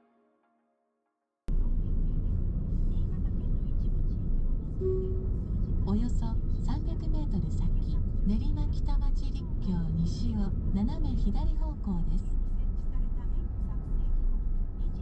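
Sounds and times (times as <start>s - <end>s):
car road and engine rumble: 1.5s - 15.0s.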